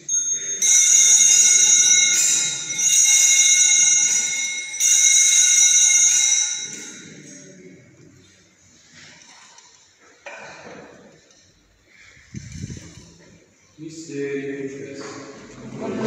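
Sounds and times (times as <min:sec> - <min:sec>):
small bells shaken: 0:00.0 - 0:07.6.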